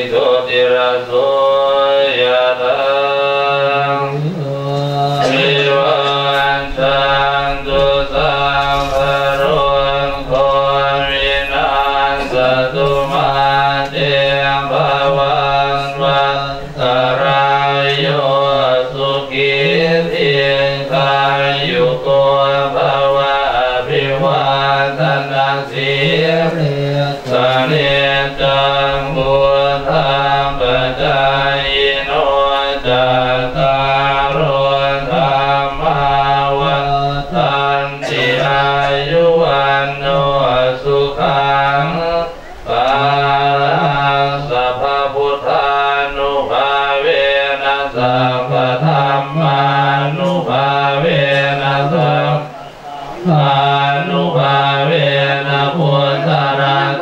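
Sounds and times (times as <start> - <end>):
monks chanting in unison: 0.0 - 57.0.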